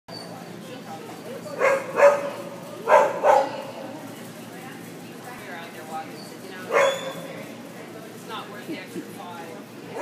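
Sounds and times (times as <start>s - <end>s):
dog barking: 1.6s - 3.7s, 6.7s - 7.2s.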